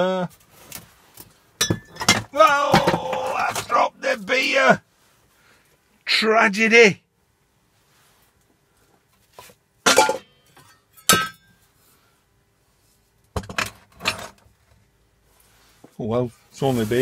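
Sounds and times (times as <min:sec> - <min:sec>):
glass bottle clinking on workbench: 0:01.6 - 0:02.2, 0:09.9 - 0:11.4.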